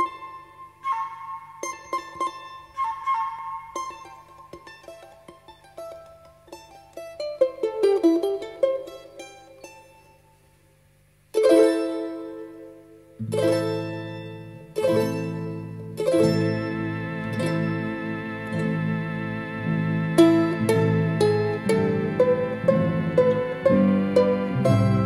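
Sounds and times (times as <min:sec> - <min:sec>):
plucked-string instrument music: 0:00.0 - 0:10.4, 0:11.3 - 0:25.0.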